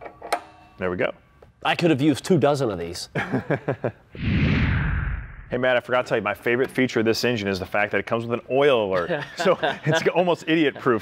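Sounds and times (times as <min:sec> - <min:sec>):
whoosh with deep rumble: 0:04.2 - 0:05.7.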